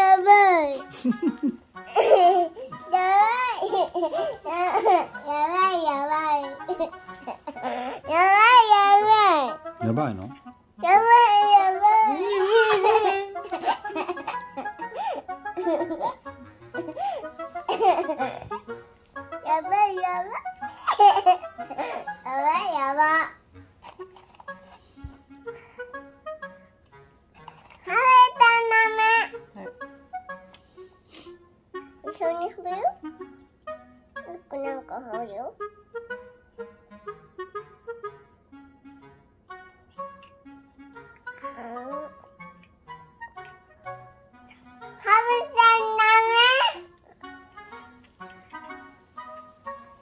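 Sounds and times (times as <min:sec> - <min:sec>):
soft background music: 0:00.0 - 0:50.0
toddler soft vocal sounds: 0:41.3 - 0:42.3
toddler girl singing a high note: 0:45.0 - 0:46.8.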